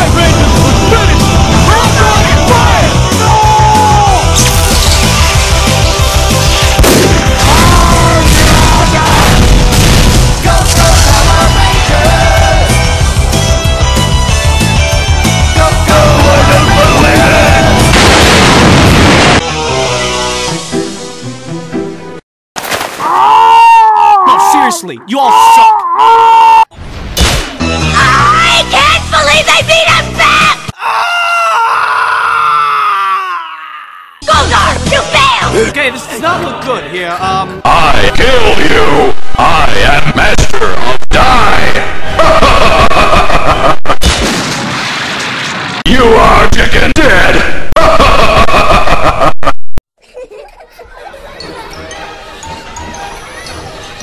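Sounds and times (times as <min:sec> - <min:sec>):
explosion-like noise: 0:06.8 - 0:11.4, 0:17.6 - 0:19.4, 0:43.9 - 0:45.8
loud dense blast of noise: 0:15.8 - 0:19.5.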